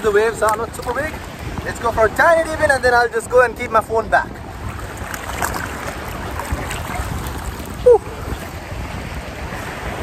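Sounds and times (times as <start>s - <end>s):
sea water sloshing: 0.3s - 2.2s, 4.3s - 10.0s.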